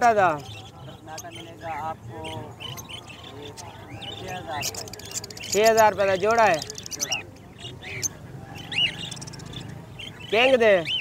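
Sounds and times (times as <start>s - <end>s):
low background murmur: 0.0s - 11.0s
parrots chirping: 0.2s - 11.0s.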